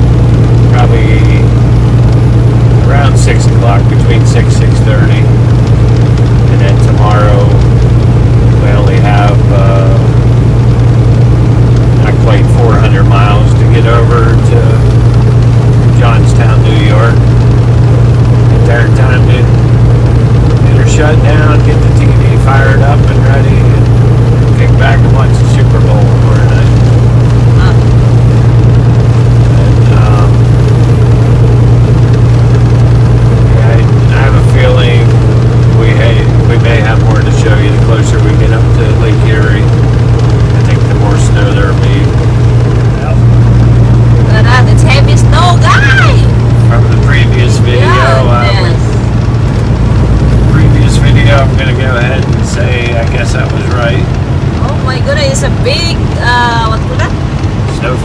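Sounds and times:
diesel truck engine drone: 0.0 - 58.0
road noise inside cab: 0.0 - 58.0
person talking: 0.7 - 1.5, 2.8 - 5.4, 6.5 - 7.6, 8.6 - 10.2, 12.0 - 15.0, 16.0 - 17.2, 18.6 - 19.6, 20.6 - 23.9, 24.5 - 26.8, 27.6 - 27.9, 29.6 - 30.4, 33.5 - 35.1, 35.7 - 39.7, 40.6 - 42.1, 44.2 - 49.0, 50.5 - 57.1.

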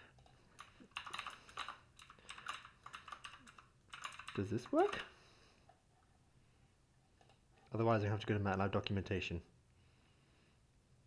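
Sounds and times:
typing on computer keyboard: 0.2 - 5.1.

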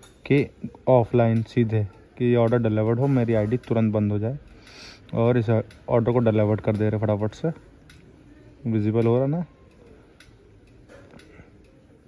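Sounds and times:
faint irregular ticks: 0.0 - 12.0.

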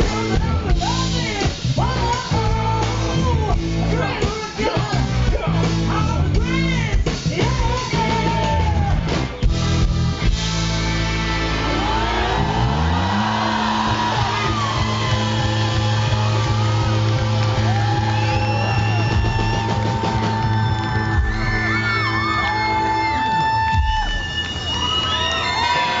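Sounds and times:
live band music: 0.0 - 24.7
crowd yelling and whooping: 10.1 - 26.0.

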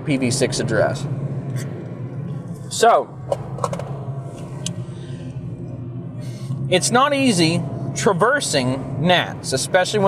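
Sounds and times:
car cabin road noise: 0.0 - 10.0.

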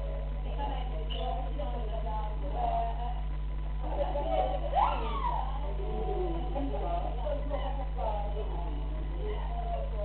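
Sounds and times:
low electrical hum: 0.0 - 10.0
people chattering: 3.8 - 10.0.

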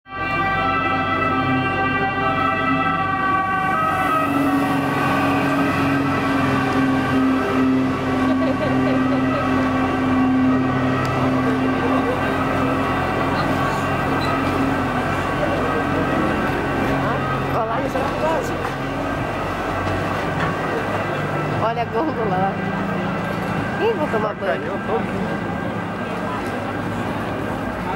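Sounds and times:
two-tone siren: 0.1 - 27.9.

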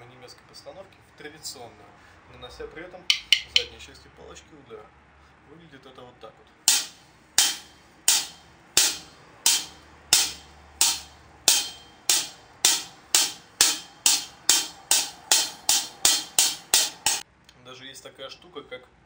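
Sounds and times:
drumstick strikes: 3.1 - 3.8, 6.7 - 17.2.

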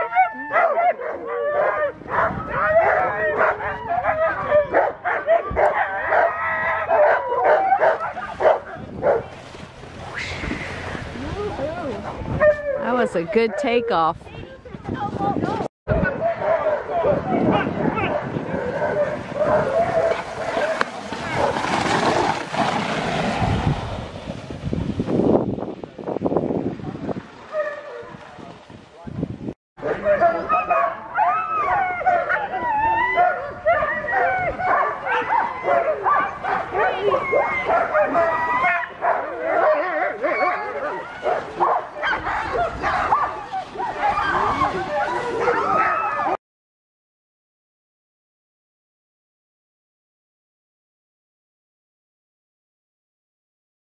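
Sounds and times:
dogs barking and yipping: 0.0 - 9.3, 12.0 - 13.9, 16.1 - 21.8, 27.5 - 28.2, 29.8 - 46.4.

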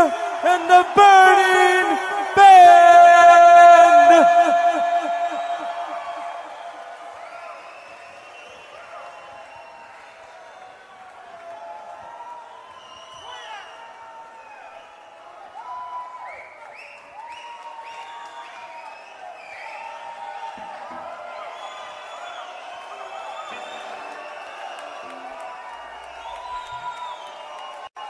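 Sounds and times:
crowd cheering: 0.0 - 28.0
crowd whistles and whoops: 3.8 - 28.0.

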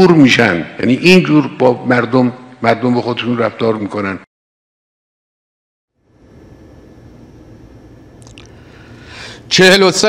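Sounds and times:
low hum: 5.9 - 9.5
lip smacks and mouth clicks: 8.2 - 8.6.

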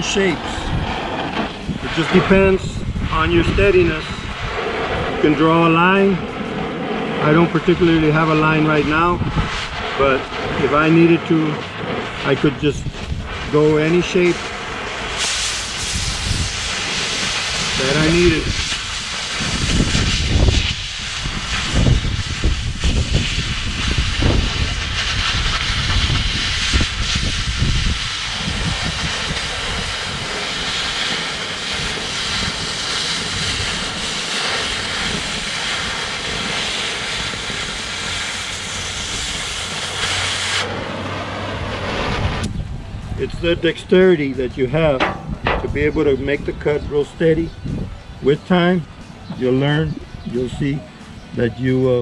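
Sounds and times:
low rumbling: 0.0 - 51.7
cutting torch hissing: 0.0 - 52.0.

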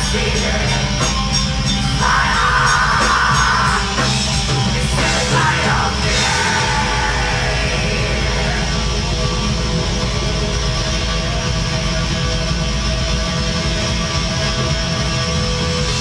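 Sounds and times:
metal band playing live: 0.0 - 16.0.

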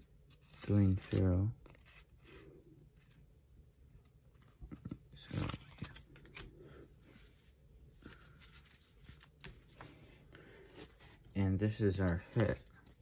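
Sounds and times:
cards rustling and clicking: 0.2 - 2.4, 4.0 - 7.4, 8.0 - 10.0, 11.7 - 13.0.

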